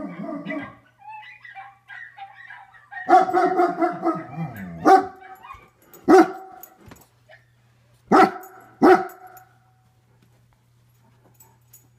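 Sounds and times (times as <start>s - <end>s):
dog barking: 1.5s - 6.7s, 8.1s - 9.4s.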